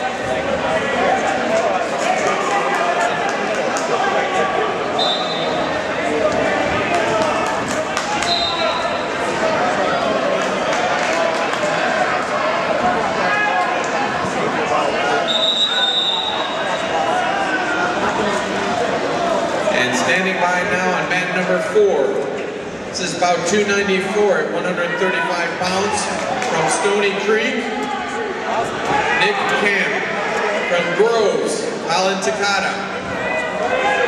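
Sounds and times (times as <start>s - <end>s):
crowd chatter and shouting: 0.0s - 34.0s
high whistle blasts: 5.0s - 5.5s, 15.2s - 16.6s.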